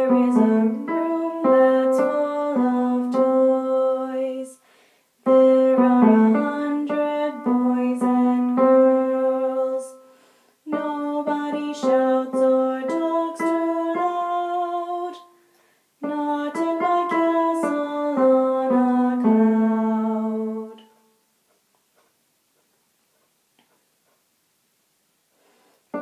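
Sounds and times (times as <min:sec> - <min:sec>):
piano accompaniment: 0:00.0 - 0:04.4, 0:05.2 - 0:10.1, 0:10.7 - 0:15.2, 0:16.0 - 0:20.8
woman singing: 0:00.0 - 0:04.6, 0:05.2 - 0:10.0, 0:10.7 - 0:15.3, 0:16.0 - 0:20.8.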